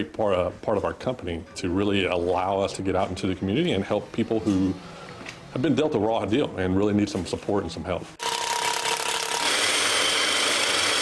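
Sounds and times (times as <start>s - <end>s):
miter saw whining: 8.2s - 11.0s
power drill whining: 8.2s - 11.0s.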